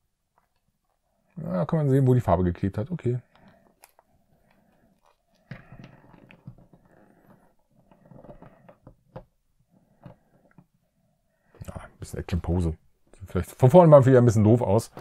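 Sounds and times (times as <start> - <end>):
soft rustles of handling: 0.2 - 15.0.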